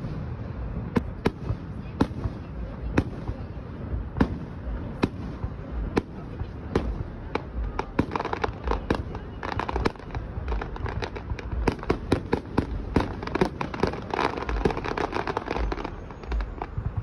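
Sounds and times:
deep fireworks booms: 0.0 - 17.0
fireworks cracking and crackling: 0.0 - 17.0.

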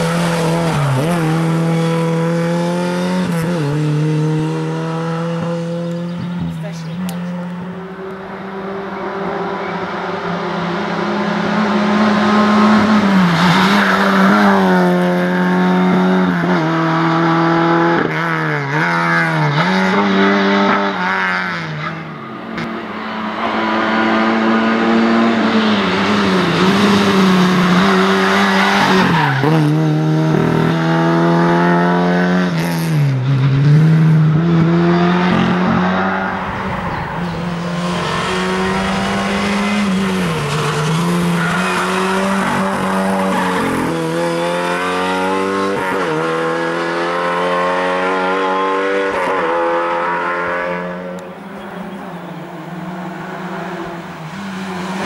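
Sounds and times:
race car engine revving high: 0.0 - 55.0.

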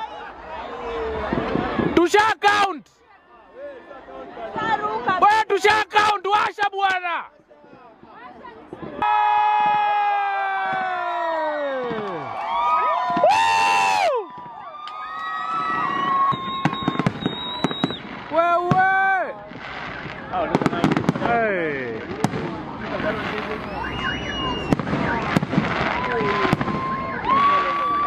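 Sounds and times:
people shouting: 0.0 - 7.1
fireworks bangs and crackles: 0.9 - 2.4, 6.8 - 28.0
whistle-like tones: 16.0 - 18.1, 23.5 - 25.3.

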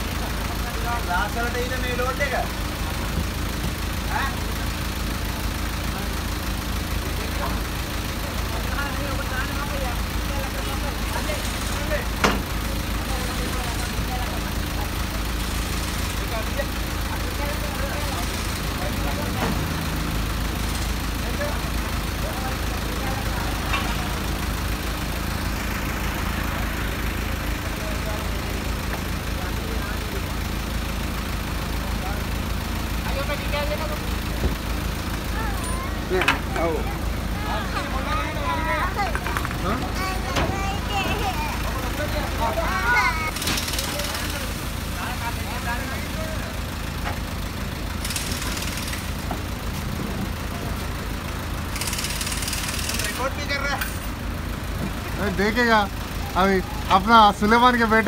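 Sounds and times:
vehicle engine idling: 0.0 - 58.0.

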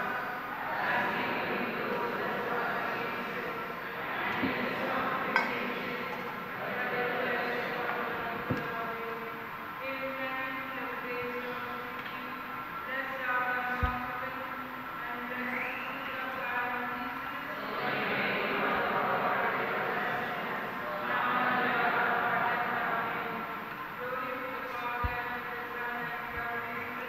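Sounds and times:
slow church hymn music: 0.0 - 27.0.

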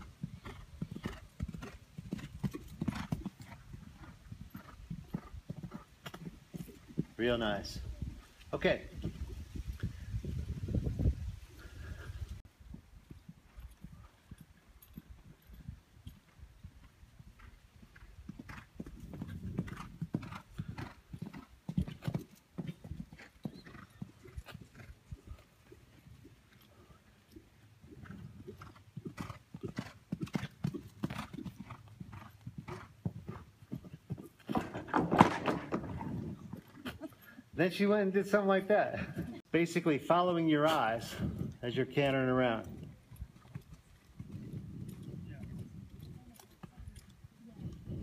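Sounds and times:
horse hoofbeats on dirt: 0.0 - 48.0.

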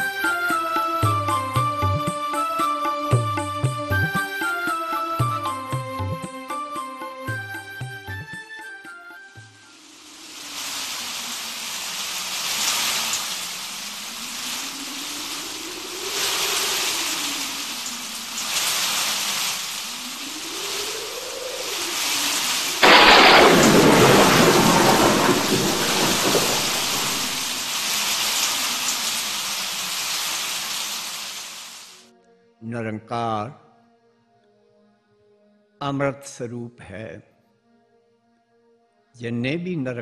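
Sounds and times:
rain hiss: 8.6 - 32.1
loud thunderclap rumbling: 20.0 - 29.1.

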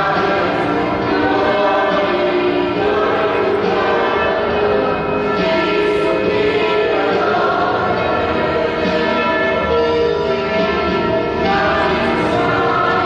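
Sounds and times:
church bells ringing: 0.0 - 13.0.

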